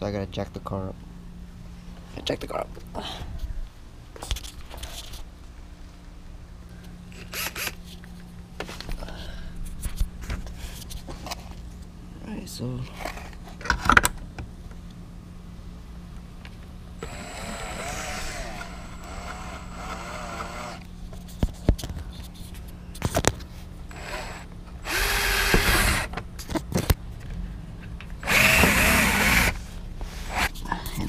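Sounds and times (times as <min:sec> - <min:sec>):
cordless drill boring holes: 0:07.2 - 0:07.8, 0:17.0 - 0:20.8, 0:23.9 - 0:26.1, 0:28.2 - 0:29.6, 0:30.3 - 0:30.5.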